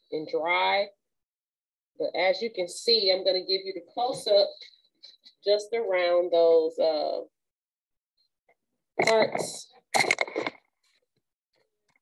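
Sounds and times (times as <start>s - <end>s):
woman speaking word: 2.0s - 4.6s, 9.0s - 9.6s.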